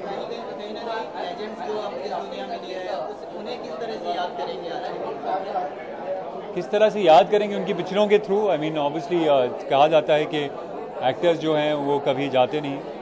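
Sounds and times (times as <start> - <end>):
chatter of many people: 0.0 - 13.0.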